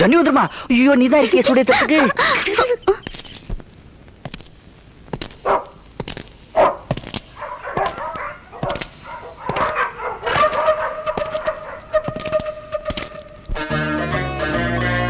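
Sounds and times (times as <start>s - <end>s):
dog barking: 5.4s - 5.8s, 6.5s - 13.4s
dog howling: 6.6s - 13.5s.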